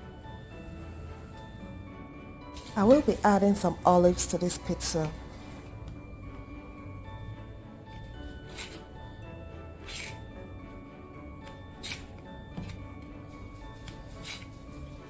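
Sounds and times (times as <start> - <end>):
background music: 0.0 - 15.0
knife cutting on plastic board: 9.8 - 10.2, 13.9 - 14.6.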